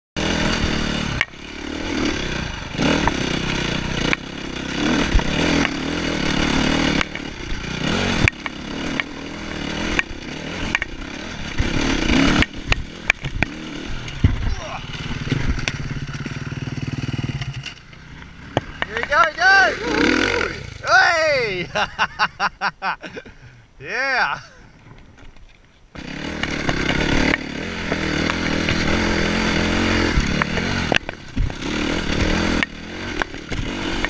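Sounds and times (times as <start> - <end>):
dirt bike engine revving: 0.2 - 23.0, 26.0 - 34.0.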